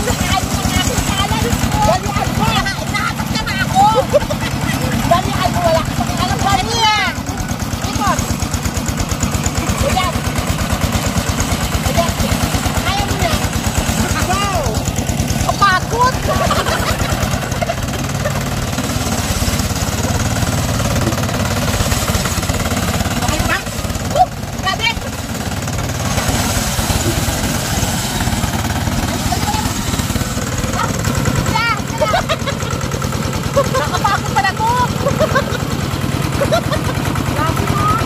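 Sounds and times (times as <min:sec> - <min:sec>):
diesel engine chugging: 0:00.0 - 0:38.0
voices calling out: 0:00.0 - 0:38.0.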